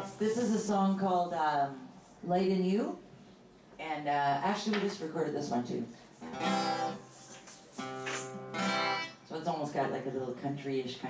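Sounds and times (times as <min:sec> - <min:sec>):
acoustic guitar chords strummed: 0:06.2 - 0:09.2.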